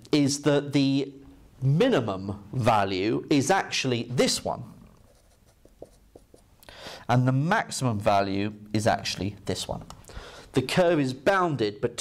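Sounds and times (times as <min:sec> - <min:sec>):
marker pen on whiteboard: 0:04.8 - 0:06.6.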